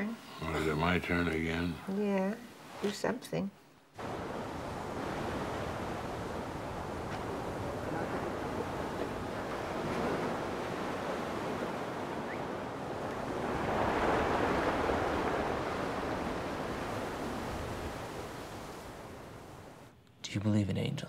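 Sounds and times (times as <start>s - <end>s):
ocean surf breaking on rocks: 4.0s - 19.9s.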